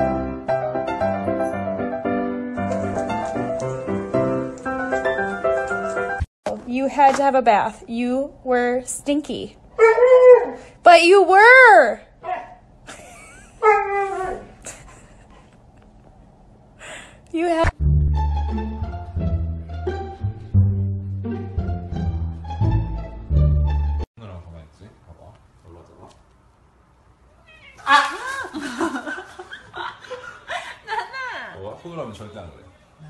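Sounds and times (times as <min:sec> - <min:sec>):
dog whining: 0:09.8 - 0:10.7, 0:13.6 - 0:14.6
cat meowing: 0:27.4 - 0:28.2.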